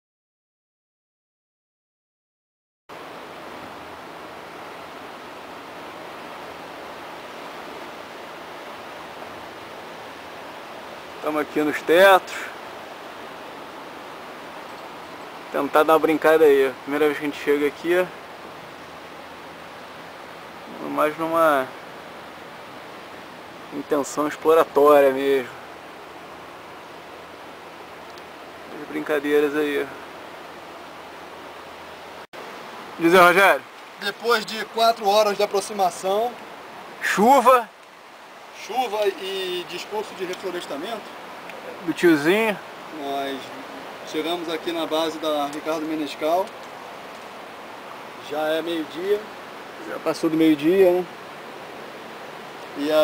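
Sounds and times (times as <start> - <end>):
steady outdoor rushing noise: 2.9 - 53.0.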